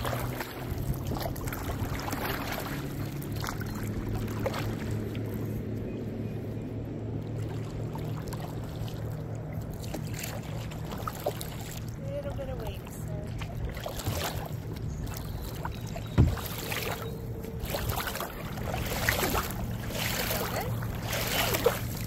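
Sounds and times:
low hum: 0.0 - 22.0
water splashing and sloshing: 0.0 - 22.0
paddle stroke swishes: 17.6 - 22.0.

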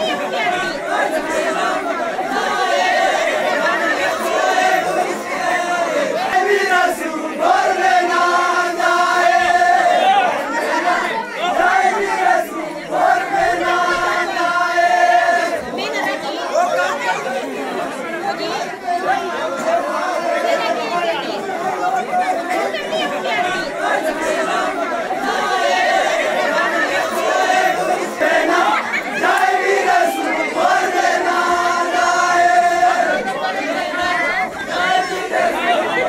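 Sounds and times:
men chanting in long notes: 0.0 - 15.7, 23.6 - 36.0
crowd chatter: 0.0 - 36.0
people shouting: 0.0 - 36.0.

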